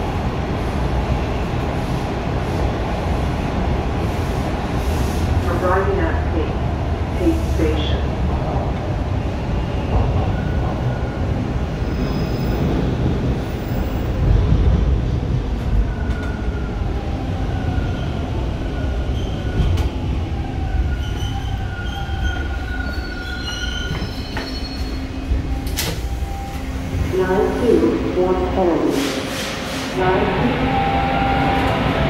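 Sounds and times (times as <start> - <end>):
subway car rumbling on rails: 0.0 - 32.0.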